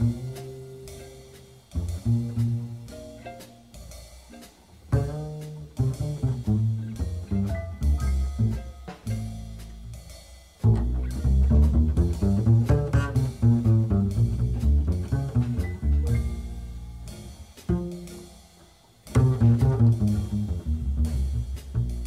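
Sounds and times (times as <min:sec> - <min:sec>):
jazz blues combo: 0:00.0 - 0:22.0
plucked double bass: 0:00.0 - 0:22.0.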